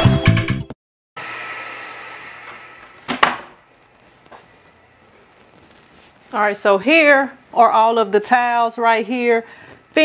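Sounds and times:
faint hum: 1.2 - 10.0
room noise hiss: 1.4 - 10.0.

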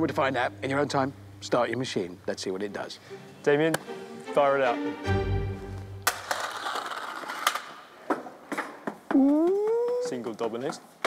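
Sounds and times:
dominoes clacking: 6.0 - 7.8.

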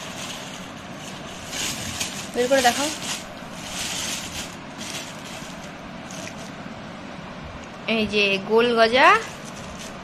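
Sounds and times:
paper and plastic bags rustling: 0.0 - 6.6, 9.2 - 10.0
steady background hiss: 0.0 - 10.0.

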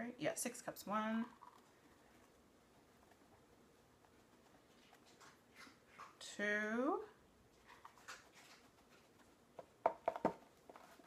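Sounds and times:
dry mix rustling and scraping: 0.8 - 6.2, 7.5 - 11.0
cup knocking against box: 9.6 - 10.5.

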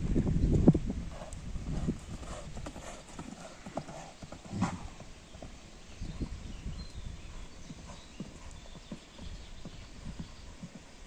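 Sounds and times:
horse hoofbeats on sand: 1.1 - 11.0.

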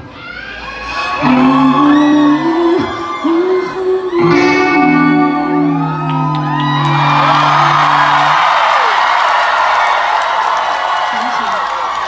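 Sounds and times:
audience cheering and whooping: 0.0 - 12.0
rock band closing chord: 4.2 - 8.8.

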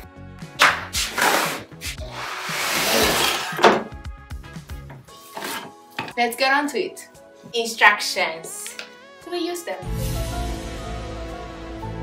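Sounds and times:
background music: 0.0 - 12.0
knocks of cardboard and panels: 3.6 - 4.0.

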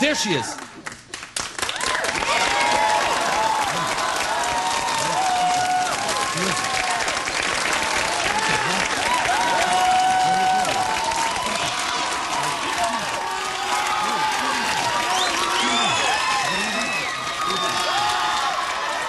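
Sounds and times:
audience applauding and cheering: 0.0 - 19.0
shouts and whoops: 1.7 - 7.0, 8.2 - 19.0.

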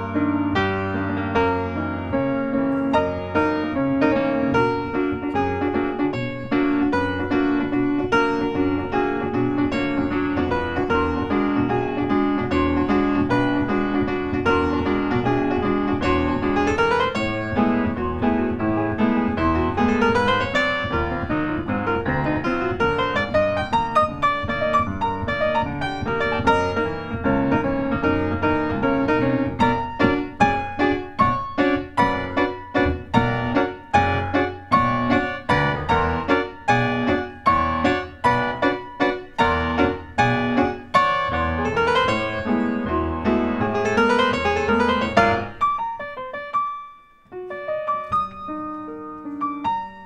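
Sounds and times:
solo grand piano: 0.0 - 50.0.

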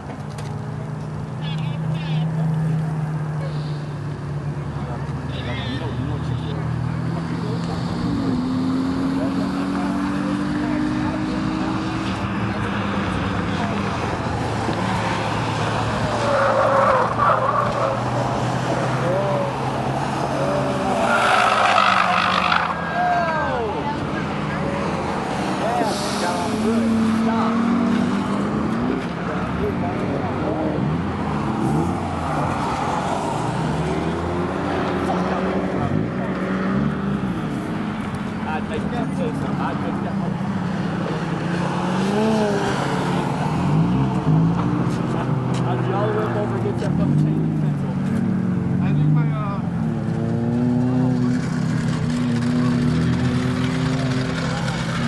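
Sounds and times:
race car engines revving past: 0.0 - 55.0.

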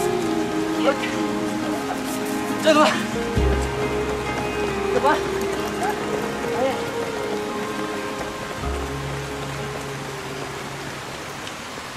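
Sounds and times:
film score music: 0.0 - 11.9
steady rain hiss: 0.0 - 11.9.

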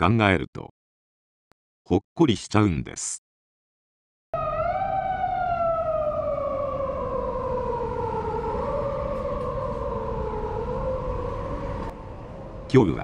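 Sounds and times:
low traffic rumble: 4.4 - 13.0
siren wailing: 4.4 - 13.0.

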